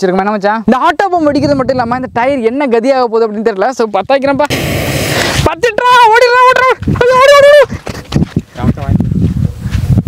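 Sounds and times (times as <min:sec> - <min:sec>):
firecracker fuse hissing: 0:04.5 - 0:05.6
man shouting: 0:05.6 - 0:07.7.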